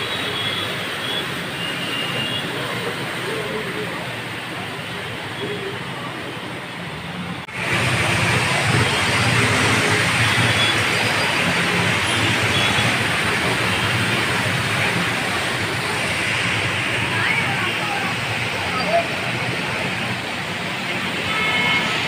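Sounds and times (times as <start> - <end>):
vehicles wading through flood water: 0.0 - 22.0.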